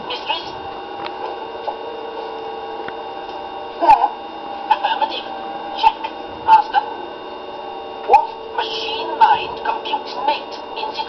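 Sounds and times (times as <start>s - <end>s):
steady electronic hum: 0.0s - 11.0s.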